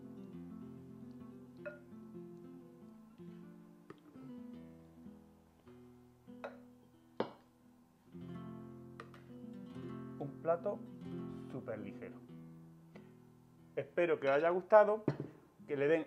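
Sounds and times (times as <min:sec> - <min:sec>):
acoustic guitar strumming chords: 0:00.0 - 0:07.4, 0:08.1 - 0:15.4.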